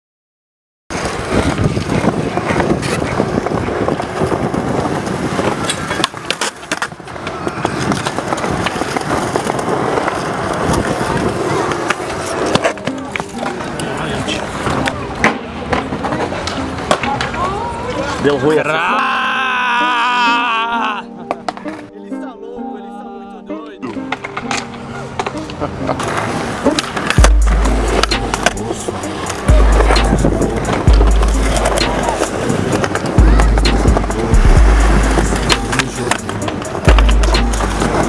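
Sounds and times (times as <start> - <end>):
skateboard clacks: 0.9 - 18.2, 24.1 - 38.0
skateboard wheels rolling on concrete: 0.9 - 20.4, 21.2 - 22.0, 23.9 - 38.0.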